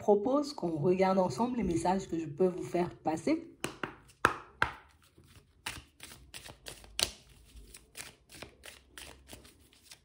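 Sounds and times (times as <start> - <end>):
cards being shuffled: 3.7 - 10.0.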